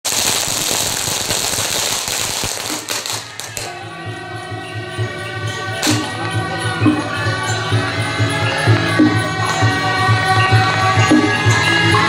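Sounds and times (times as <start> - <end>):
firecrackers crackling: 0.0 - 3.8, 5.8 - 6.2
music with held notes: 2.5 - 12.0.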